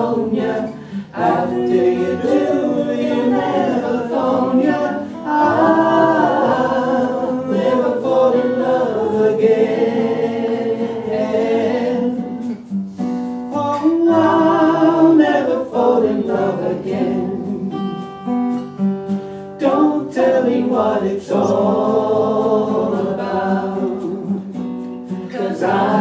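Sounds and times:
woman singing: 0:00.0 - 0:12.6, 0:13.6 - 0:18.2, 0:25.2 - 0:26.0
strummed acoustic guitar: 0:00.0 - 0:26.0.

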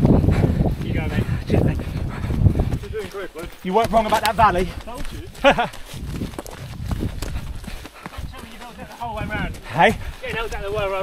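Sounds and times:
footsteps jogging on gravel: 0:00.0 - 0:11.0
man laughing: 0:05.1 - 0:05.9.

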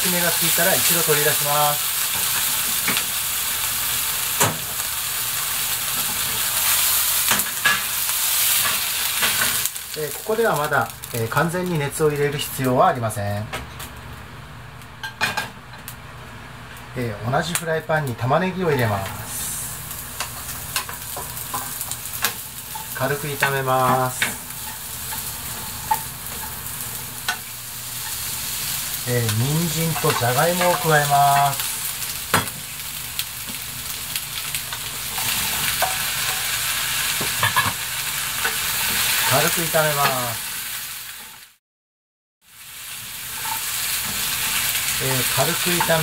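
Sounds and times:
food sizzling in frying pan: 0:00.0 - 0:13.1, 0:13.8 - 0:41.6, 0:42.4 - 0:46.0.

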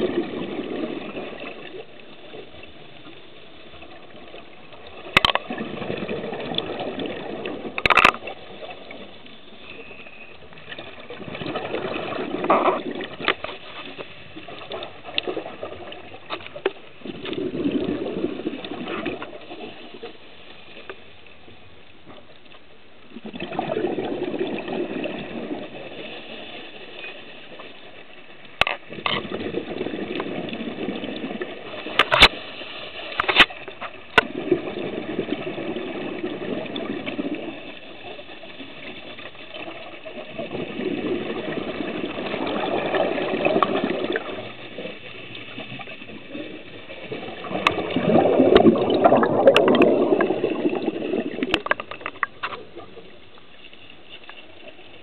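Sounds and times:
exhaled bubbles underwater: 0:00.0 - 0:13.5, 0:14.3 - 0:20.2, 0:23.1 - 0:27.6, 0:28.8 - 0:32.1, 0:33.8 - 0:53.5.

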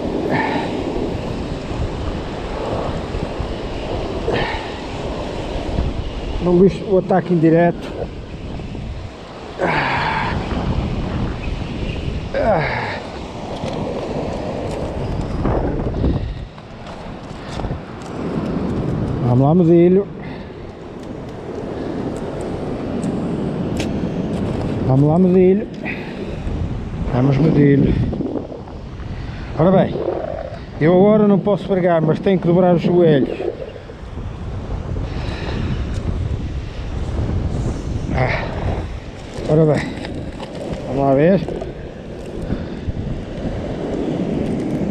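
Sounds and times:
wind buffeting microphone: 0:00.0 - 0:44.9.

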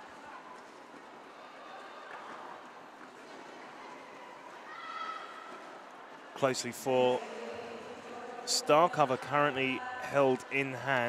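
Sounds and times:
skate wheels rolling and scuffing: 0:00.0 - 0:06.3
murmur of crowd voices: 0:00.0 - 0:11.0.

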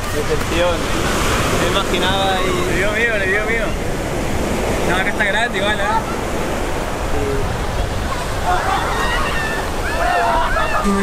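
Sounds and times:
wind buffeting microphone: 0:00.0 - 0:10.9
ocean surf washing on beach: 0:00.0 - 0:11.0.

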